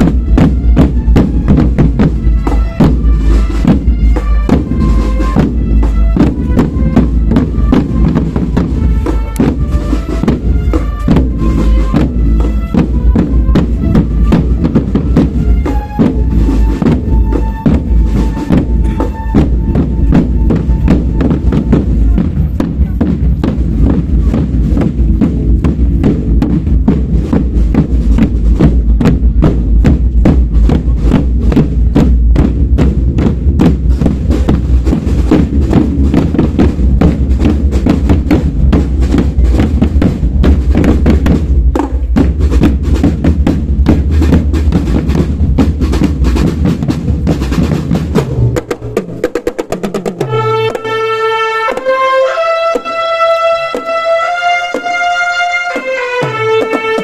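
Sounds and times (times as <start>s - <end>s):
marching drum line: 0.0s - 57.0s
sustained pitched melody: 50.2s - 57.0s.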